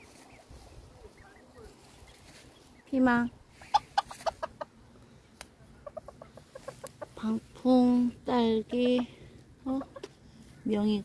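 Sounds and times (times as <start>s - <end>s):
chicken clucking: 0.0s - 2.8s, 3.5s - 7.4s, 8.5s - 9.1s, 9.7s - 10.2s.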